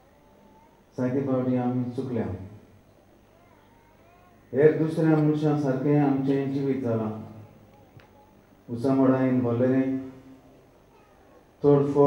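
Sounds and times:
man speaking into a microphone: 0:00.9 - 0:02.6, 0:04.5 - 0:07.4, 0:08.7 - 0:10.2, 0:11.6 - 0:12.0.

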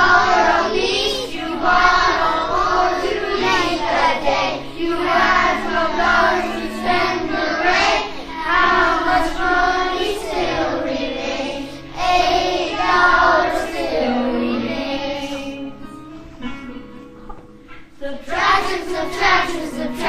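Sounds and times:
children singing together: 0:00.0 - 0:15.9, 0:18.0 - 0:20.0
backing accompaniment: 0:00.0 - 0:20.0.

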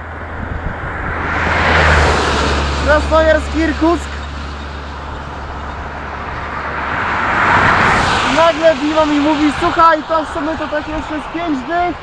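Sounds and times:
low hum: 0:00.0 - 0:08.3
truck driving past: 0:00.0 - 0:10.4.

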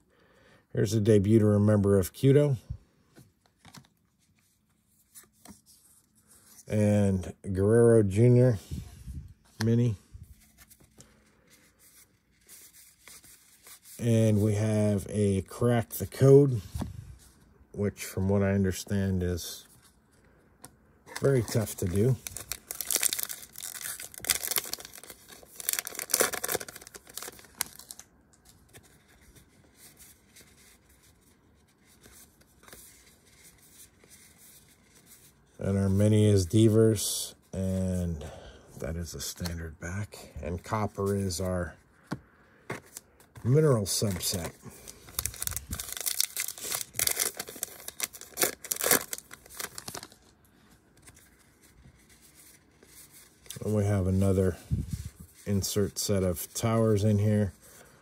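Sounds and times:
cards rustling and ticking: 0:03.1 - 0:06.7, 0:09.5 - 0:15.0, 0:19.6 - 0:35.4, 0:39.2 - 0:57.9
foil wrapper tearing and crinkling: 0:21.2 - 0:28.0, 0:44.2 - 0:50.3.

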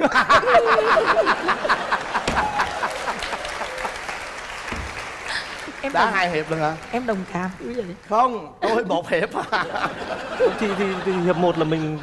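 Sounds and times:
audience laughing: 0:00.0 - 0:04.2, 0:05.2 - 0:05.8, 0:08.7 - 0:12.0
audience applauding: 0:00.6 - 0:08.3.

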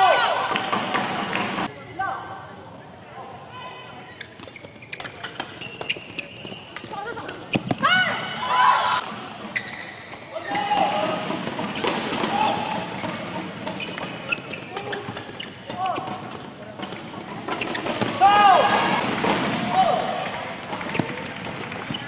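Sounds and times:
shoes squeaking on court: 0:04.1 - 0:07.9, 0:09.0 - 0:10.6, 0:11.4 - 0:18.2, 0:20.7 - 0:22.0.

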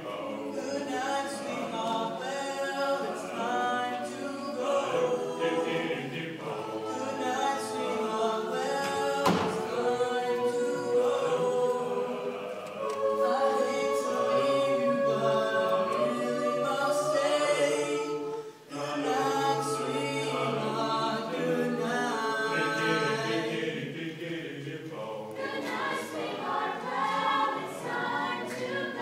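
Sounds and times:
choir singing a cappella: 0:00.0 - 0:29.0
sharp knock: 0:08.8 - 0:09.6.

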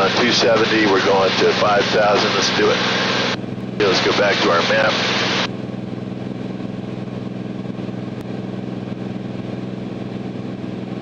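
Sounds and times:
aircraft engine and propeller droning: 0:00.0 - 0:11.0.

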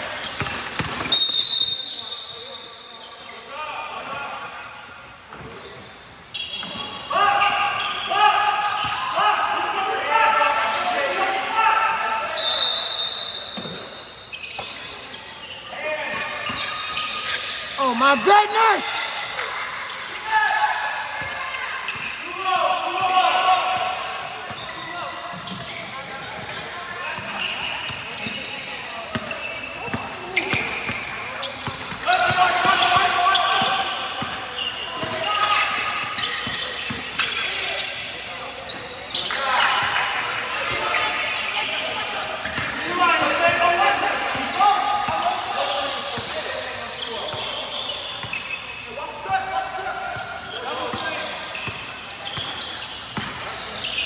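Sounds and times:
sneaker squeaks: 0:00.0 - 0:09.3, 0:11.9 - 0:54.0
short whistle blast: 0:01.1 - 0:02.4, 0:12.4 - 0:13.6.

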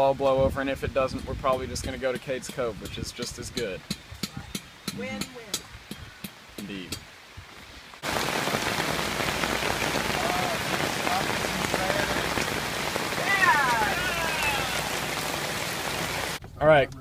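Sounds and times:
rain falling on pavement: 0:00.0 - 0:16.4.

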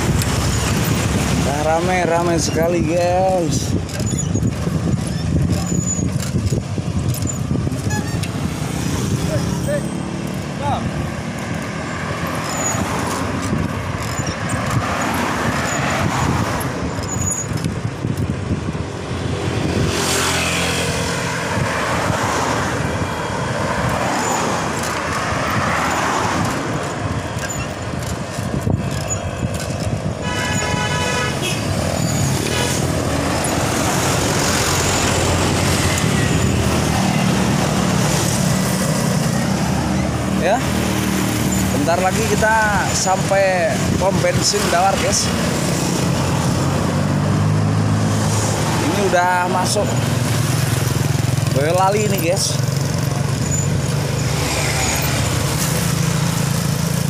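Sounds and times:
cars and motorcycles passing: 0:00.0 - 0:57.0
constant rush of noise: 0:00.0 - 0:57.0.

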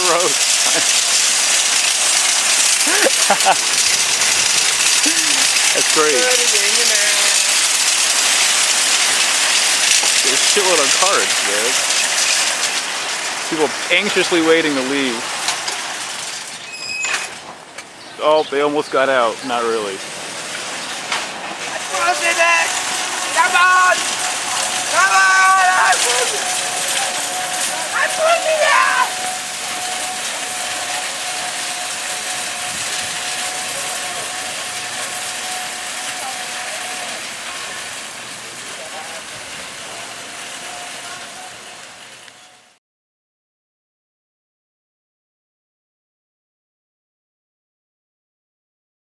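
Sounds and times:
high-pitched squeal: 0:00.0 - 0:12.7, 0:20.7 - 0:39.3, 0:39.9 - 0:42.8
parking lot vehicle noise: 0:00.0 - 0:42.8
shopping carts rolling and rattling: 0:00.0 - 0:42.8
thin high whine: 0:21.6 - 0:38.1.

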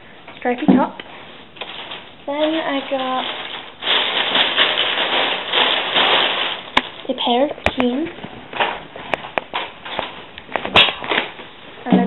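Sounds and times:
shopping bag rustling and crinkling: 0:01.4 - 0:11.4.

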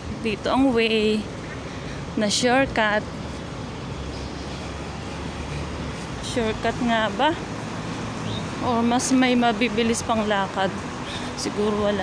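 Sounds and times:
distant traffic hum: 0:00.0 - 0:12.0.

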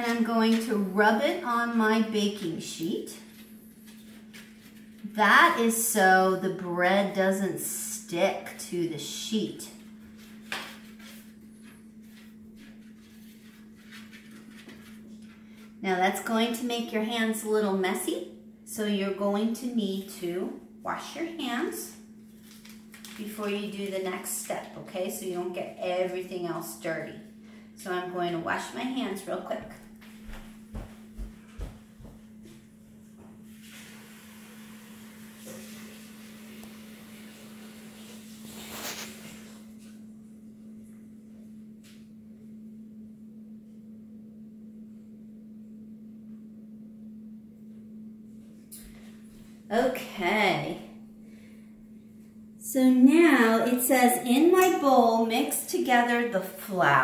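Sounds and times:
low hum: 0:00.0 - 0:57.0
footsteps on wooden floor: 0:29.6 - 0:32.6.

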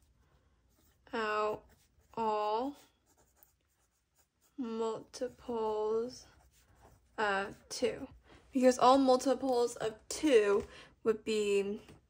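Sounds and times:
pencil scratching on paper: 0:00.0 - 0:09.0.

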